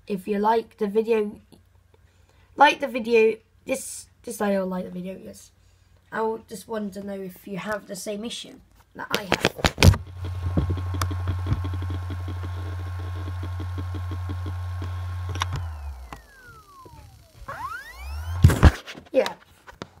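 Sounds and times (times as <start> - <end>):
hard drive clicks: 9.4 - 18.8
hard drive humming and whining: 9.8 - 18.8.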